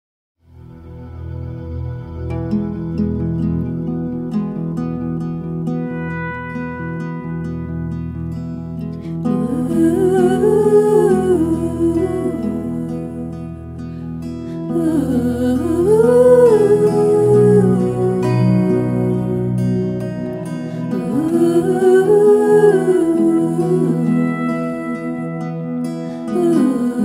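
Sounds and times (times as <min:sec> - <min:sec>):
held instrumental notes: 0:00.5 - 0:27.0
woman humming: 0:09.2 - 0:13.5, 0:14.6 - 0:27.0.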